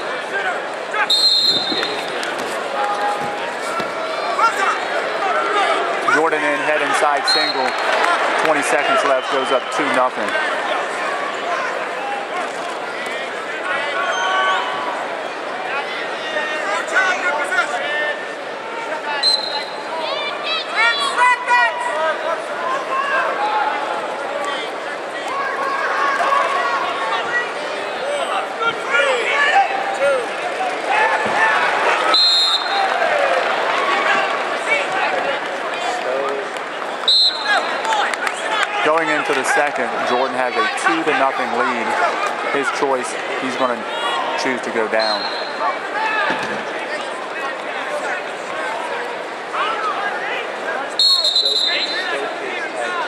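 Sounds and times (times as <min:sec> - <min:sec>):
crowd and coaches shouting: 0:00.0 - 0:53.0
referee's whistle: 0:01.0 - 0:02.1, 0:07.2 - 0:07.8, 0:19.2 - 0:19.9, 0:32.0 - 0:32.9, 0:37.0 - 0:37.7, 0:45.0 - 0:45.7, 0:50.9 - 0:52.2.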